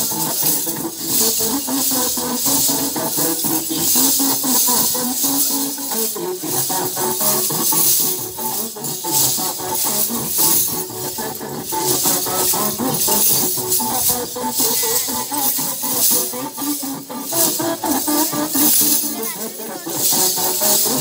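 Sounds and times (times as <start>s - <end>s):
recorded film song: 0.0s - 21.0s
small metal cymbals jingling: 0.0s - 21.0s.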